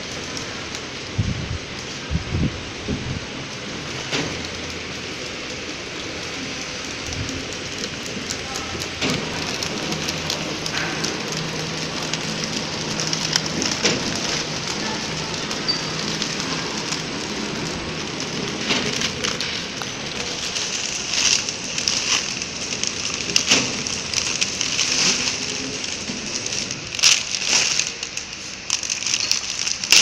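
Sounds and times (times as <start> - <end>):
packing machine hissing and clicking: 0.0 - 30.0.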